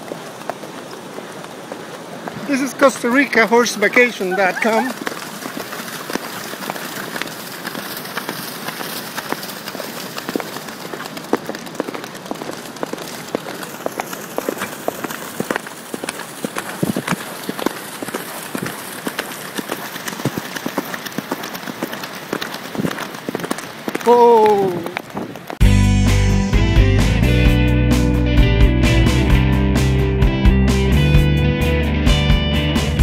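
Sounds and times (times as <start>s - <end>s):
horse hoofbeats on wet sand: 0.0s - 25.6s
splashes through shallow water: 0.0s - 25.6s
surf rushing: 0.0s - 25.6s.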